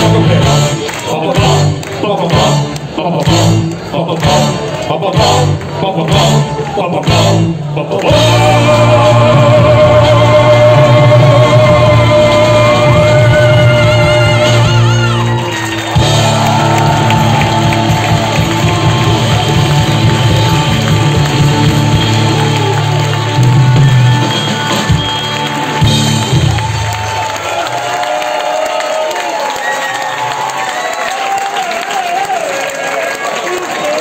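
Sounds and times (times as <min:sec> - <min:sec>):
crowd cheering and shouting: 0:03.8 - 0:34.0
live rock band playing: 0:08.1 - 0:27.0.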